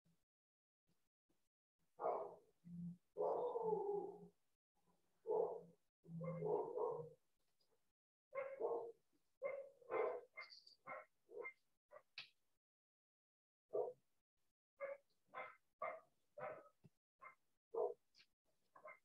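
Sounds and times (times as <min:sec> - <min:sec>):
dog barking: 0:02.0 - 0:02.5, 0:03.2 - 0:04.1, 0:05.2 - 0:07.2, 0:08.4 - 0:12.1, 0:13.7 - 0:14.0, 0:14.8 - 0:18.0, 0:18.8 - 0:19.0.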